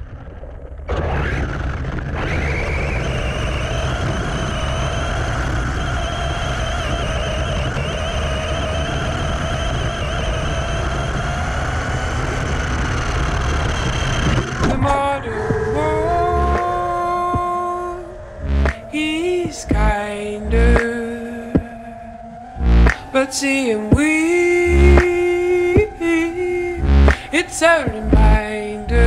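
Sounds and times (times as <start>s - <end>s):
low rumble: 11.1s - 29.0s.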